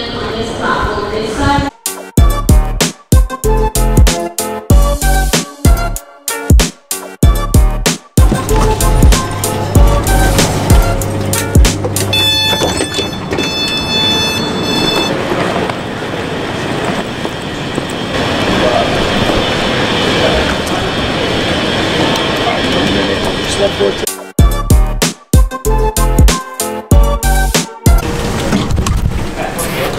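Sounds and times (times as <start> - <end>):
footsteps: 8.2 - 9.6
low hum: 8.2 - 15.0
suitcase wheels rolling: 8.2 - 20.6
high electronic tones: 11.9 - 15.2.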